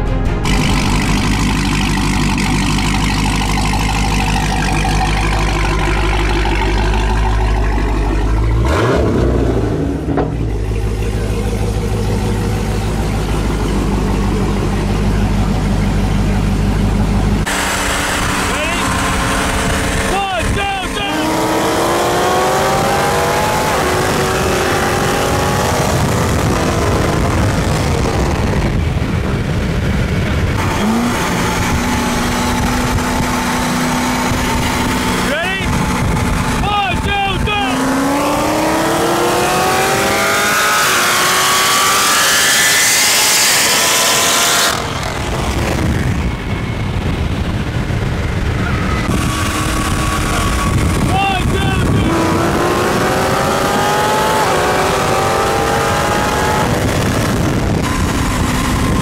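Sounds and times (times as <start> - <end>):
car engine at full throttle: 0.0 - 59.0
car engine idling with rumble: 0.1 - 59.0.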